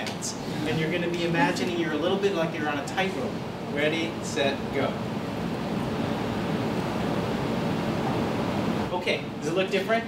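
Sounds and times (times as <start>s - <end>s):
room background hiss: 0.0s - 10.0s.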